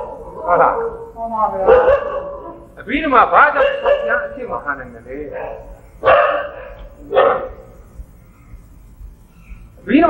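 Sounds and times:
dog barking: 0:00.0 - 0:02.7, 0:03.5 - 0:04.4, 0:05.3 - 0:07.8
man speaking: 0:02.8 - 0:05.7, 0:09.8 - 0:10.0.

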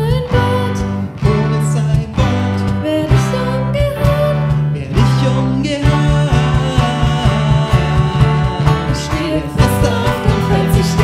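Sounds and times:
bass guitar: 0:00.0 - 0:11.0
guitars and keyboard: 0:00.0 - 0:11.0
woman and man singing: 0:00.0 - 0:11.0.

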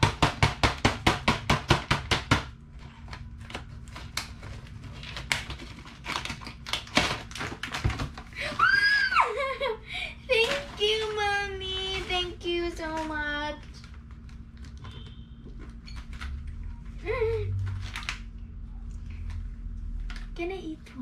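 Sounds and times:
girl squealing and singing: 0:08.4 - 0:09.4.

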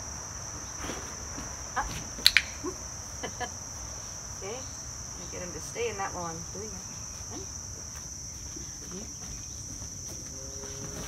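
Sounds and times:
crickets chirping: 0:00.0 - 0:11.0
training clicker double click: 0:02.2 - 0:02.6.

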